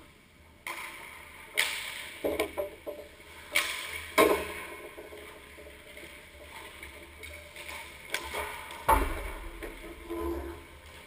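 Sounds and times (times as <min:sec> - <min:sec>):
hockey sticks cracking on pucks: 0:00.6 - 0:09.8
skating on ice: 0:00.6 - 0:11.0.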